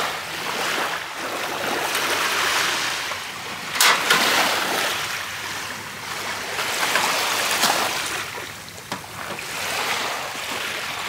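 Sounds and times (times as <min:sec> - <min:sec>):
waves washing on pebbles: 0:00.0 - 0:11.0.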